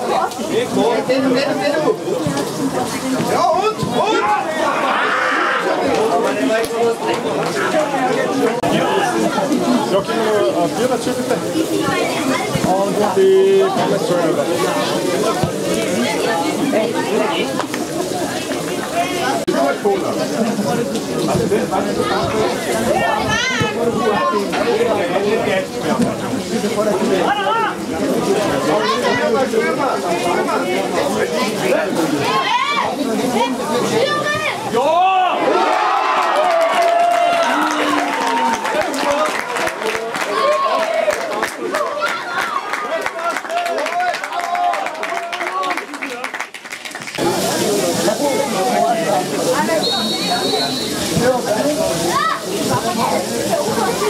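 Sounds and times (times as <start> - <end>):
voices calling out: 0.0 - 45.9, 47.2 - 54.0
spectators chattering: 0.0 - 54.0.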